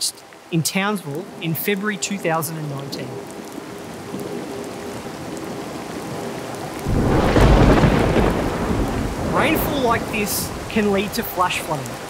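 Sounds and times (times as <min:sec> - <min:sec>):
heavy rain: 0:00.0 - 0:12.0
thunder clap rumbling: 0:06.0 - 0:11.8.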